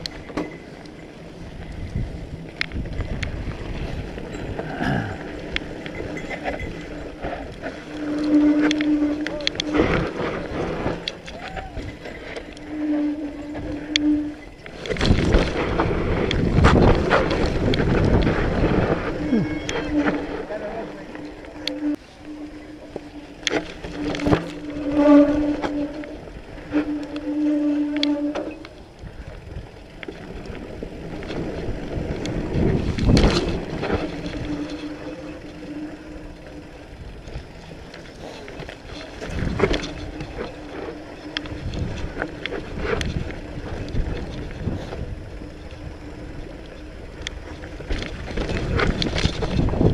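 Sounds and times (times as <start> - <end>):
steady buzzing tone: 0.0 - 49.9
wind rushing over microphone: 1.3 - 49.9
bike frame rattling and knocking: 47.2 - 49.9.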